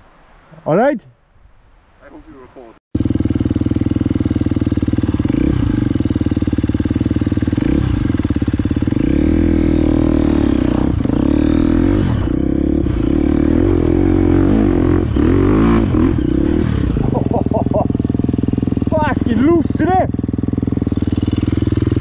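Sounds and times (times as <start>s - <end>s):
dirt bike engine revving: 3.0s - 22.0s.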